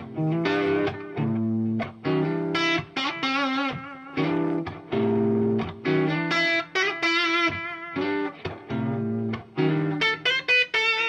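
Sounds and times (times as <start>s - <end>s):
electric guitar with delay: 0.0s - 11.0s.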